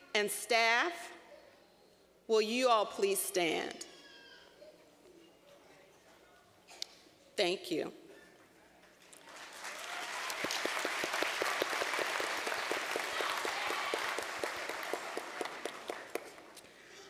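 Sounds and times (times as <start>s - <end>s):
audience applause: 9.2s - 16.6s
person clapping close to microphone: 9.7s - 16.6s.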